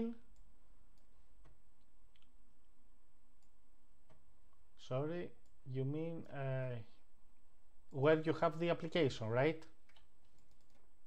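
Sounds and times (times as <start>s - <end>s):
computer mouse clicks: 9.8s - 10.9s.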